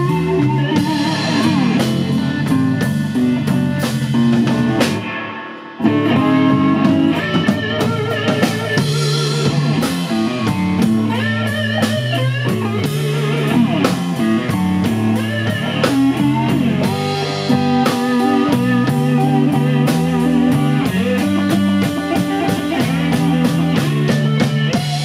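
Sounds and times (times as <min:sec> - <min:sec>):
drum kit: 0:00.0 - 0:25.0
electric guitar lead: 0:00.0 - 0:25.0
walking bass guitar: 0:00.0 - 0:25.0.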